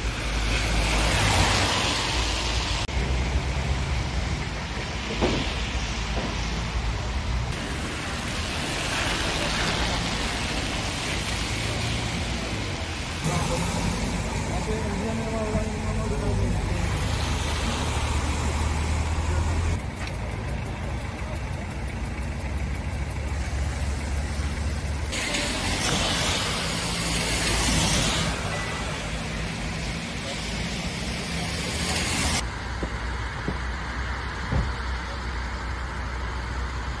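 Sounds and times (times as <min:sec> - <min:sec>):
low engine rumble: 0:00.0 - 0:37.0
wet tyres hissing: 0:00.0 - 0:37.0.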